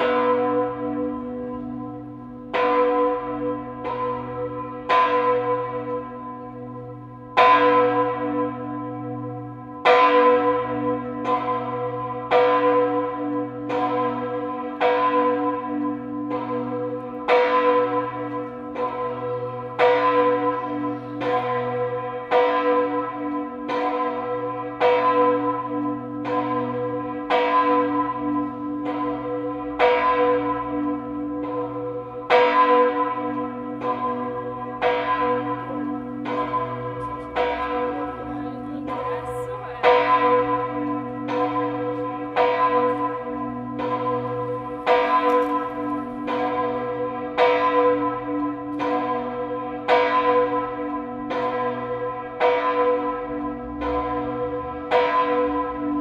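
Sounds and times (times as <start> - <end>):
large church bell ringing: 0.0 - 56.0.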